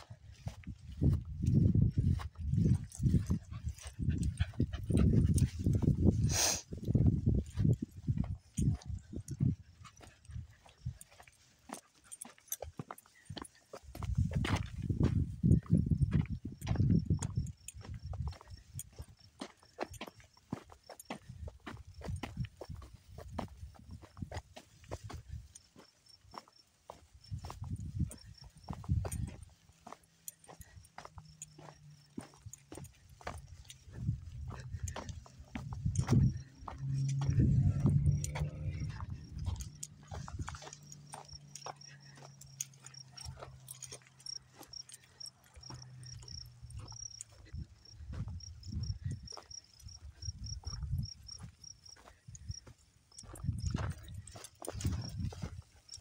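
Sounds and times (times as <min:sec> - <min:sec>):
footsteps on dry dirt: 0:00.0 - 0:56.0
microphone rumble: 0:35.8 - 0:40.6.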